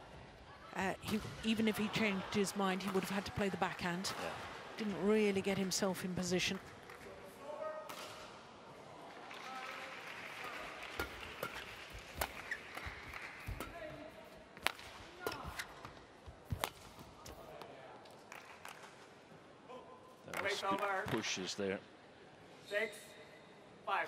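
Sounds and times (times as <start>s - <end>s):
rackets striking shuttlecock: 11.0s - 17.4s.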